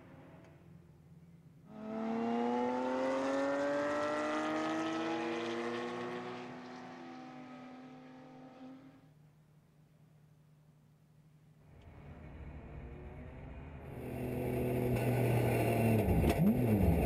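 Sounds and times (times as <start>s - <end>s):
race car engine accelerating: 1.7s - 9.0s, 11.9s - 17.0s.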